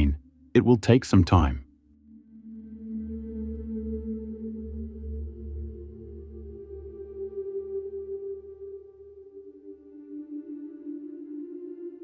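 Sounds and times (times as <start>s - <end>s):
ambient music droning tones: 1.6s - 12.0s.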